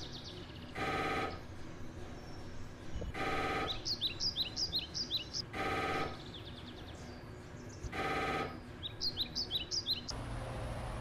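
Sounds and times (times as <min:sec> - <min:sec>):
songbird chirping: 0:00.0 - 0:10.2
mri scanner pulsing buzz: 0:00.8 - 0:01.4, 0:03.1 - 0:03.8, 0:05.5 - 0:06.2, 0:07.9 - 0:08.6.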